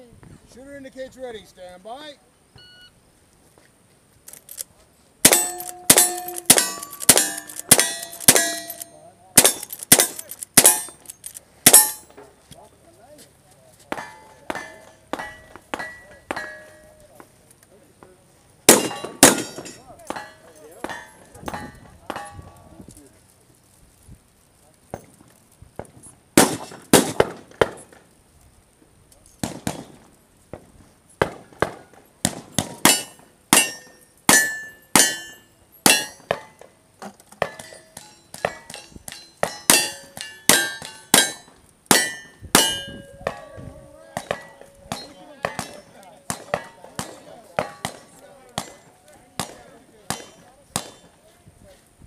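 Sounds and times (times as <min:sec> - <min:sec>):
steel targets ringing: 0:05.2 - 0:11.1, 0:11.7 - 0:12.2, 0:13.9 - 0:17.0, 0:18.7 - 0:22.6, 0:32.8 - 0:36.6, 0:37.4 - 0:49.5
rapid gunshots: 0:26.4 - 0:27.5.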